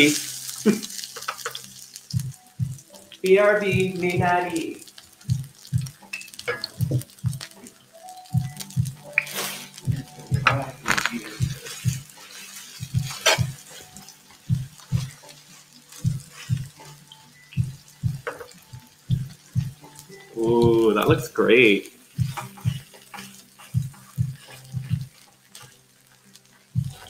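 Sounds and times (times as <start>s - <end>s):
background music with low beat: 0.0s - 27.0s
batter sizzling in oil: 0.0s - 27.0s
sharp clicks and crackles: 0.1s - 2.4s, 5.0s - 17.0s.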